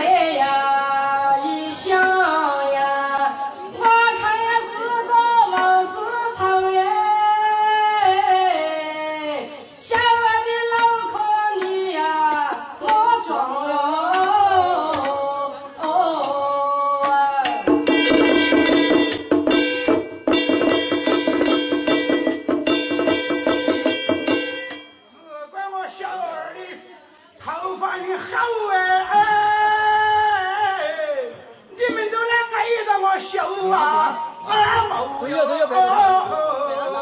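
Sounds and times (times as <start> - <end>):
woman singing folk song: 0.0 - 17.7
drum beaten with wooden sticks: 14.0 - 25.2
ringing pitched tones: 17.7 - 25.2.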